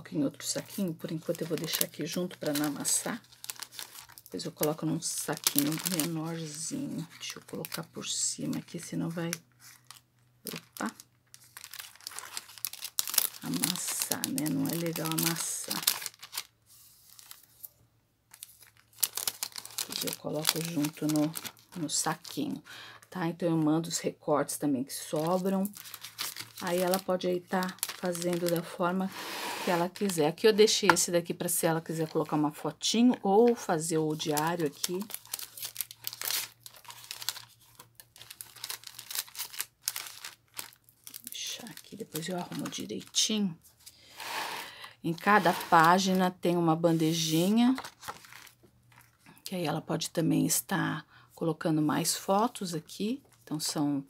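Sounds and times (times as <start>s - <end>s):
plastic bag crinkling: 0.4s - 17.7s, 18.3s - 23.1s, 25.0s - 31.0s, 31.7s - 32.6s, 33.3s - 43.3s, 44.1s - 49.2s.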